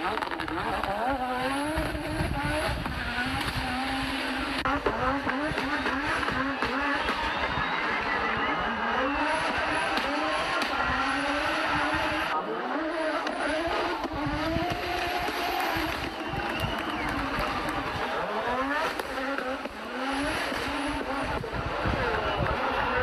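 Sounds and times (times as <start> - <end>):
car engine revving hard: 0.0 - 23.0.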